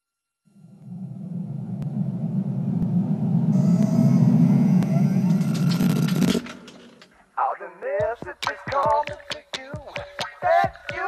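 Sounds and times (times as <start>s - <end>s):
low rumbling electronic noise: 0.4s - 7.4s.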